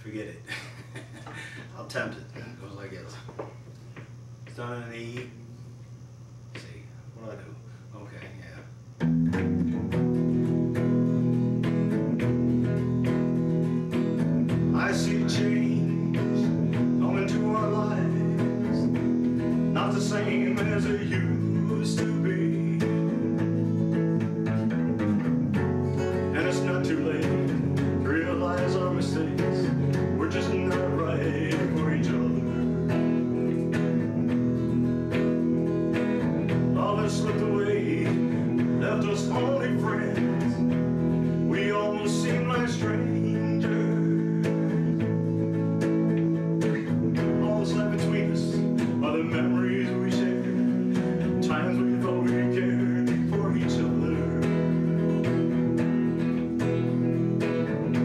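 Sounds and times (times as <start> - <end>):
electric guitar chords: 8.8 - 58.0
man singing: 14.5 - 24.5, 26.0 - 34.0, 36.4 - 45.5, 46.6 - 55.6.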